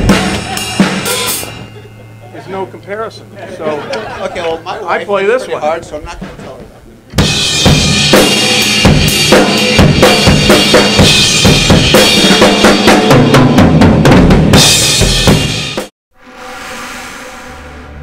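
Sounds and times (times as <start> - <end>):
rock drum kit played fast: 0.0 - 1.9, 7.2 - 15.9
ringing cymbals: 0.0 - 3.4.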